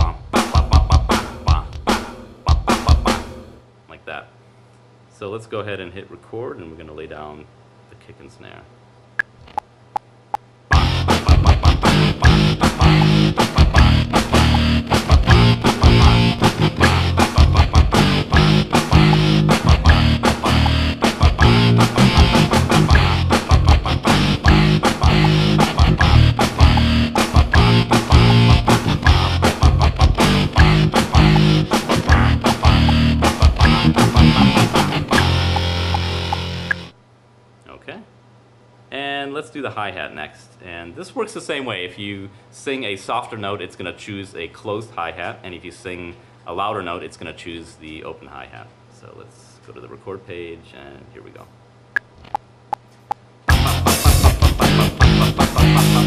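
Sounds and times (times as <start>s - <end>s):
kick and snare drums: 0.0s - 3.3s, 10.7s - 35.4s, 53.5s - 56.0s
distorted rock guitar and bass: 0.0s - 3.4s, 10.7s - 37.0s, 53.5s - 56.0s.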